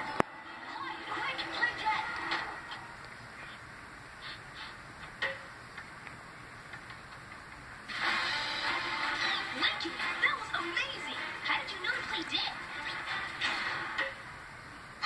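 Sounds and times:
cartoon soundtrack music and effects: 7.9 - 14.3.

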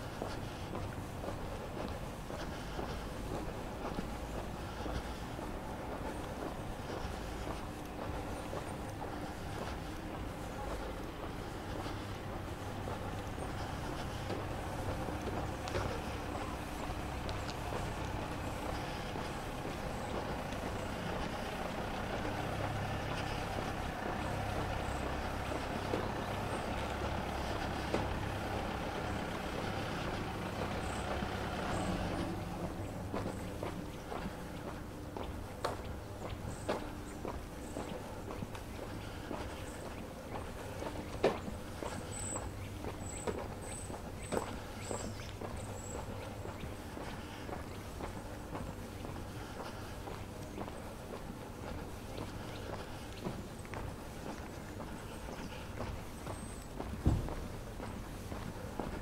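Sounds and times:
cars driving by: 0.0 - 59.0.

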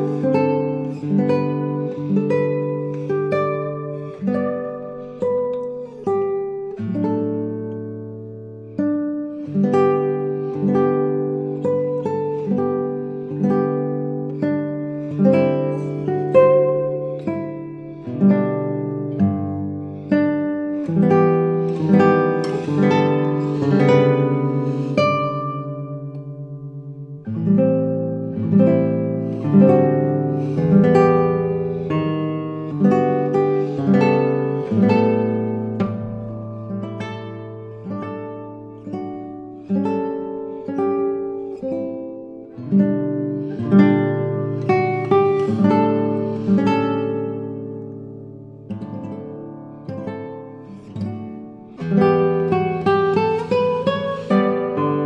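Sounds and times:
fingerpicked classical guitar: 0.0 - 55.0.

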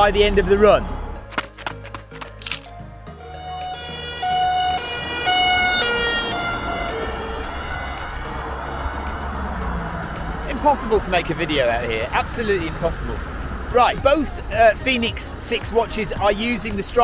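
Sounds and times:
road traffic noise: 0.0 - 17.0
two-tone siren: 3.1 - 10.4.

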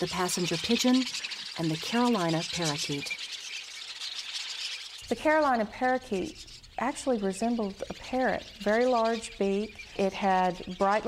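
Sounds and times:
bird chirp: 0.0 - 11.0.

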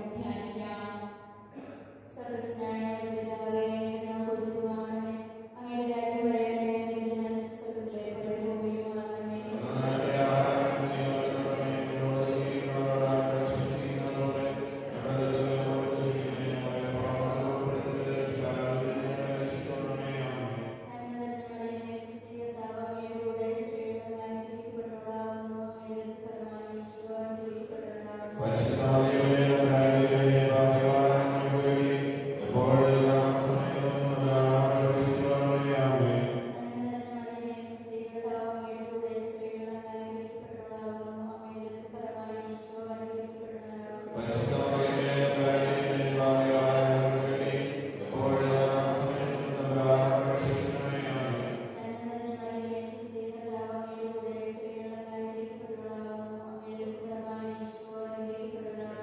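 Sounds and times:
lower voices chanting: 9.5 - 20.7, 28.4 - 36.5, 44.1 - 51.7
voices chanting slowly: 9.5 - 21.0, 28.3 - 36.6, 44.0 - 51.8.

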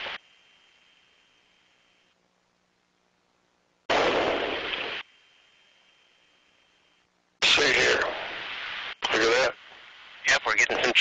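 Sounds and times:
thin steady tone: 0.0 - 2.8, 4.7 - 7.3
faint hiss: 0.0 - 11.0.

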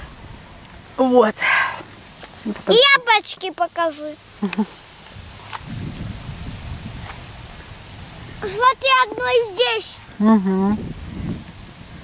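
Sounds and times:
wind buffeting microphone: 5.1 - 12.0.

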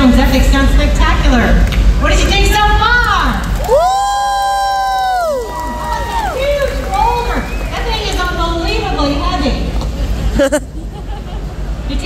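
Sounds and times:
audience shouting woo: 3.6 - 7.8.

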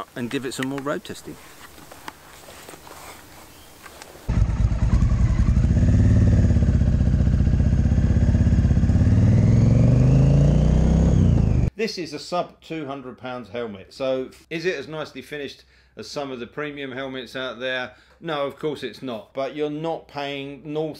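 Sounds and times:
quiet outdoor background: 0.0 - 20.9
motorcycle engine running: 4.3 - 11.7.

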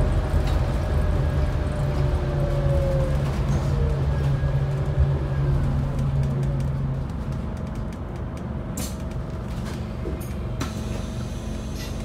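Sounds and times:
bus body rattles: 0.0 - 12.0
bus engine droning: 0.0 - 12.0
road rumble: 0.0 - 12.0.

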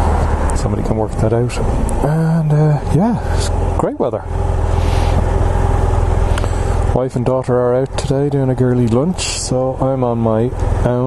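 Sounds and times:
motorcycle engine idling: 2.1 - 11.0.

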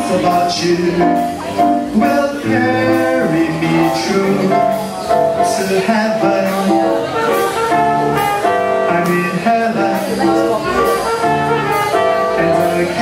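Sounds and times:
drums: 0.0 - 13.0
jazz band playing swing: 0.0 - 13.0
upright bass: 0.0 - 13.0.

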